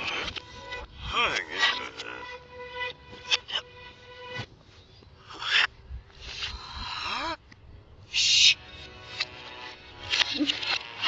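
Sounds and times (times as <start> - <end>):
cartoon background music: 0.0 - 4.5, 8.2 - 11.0.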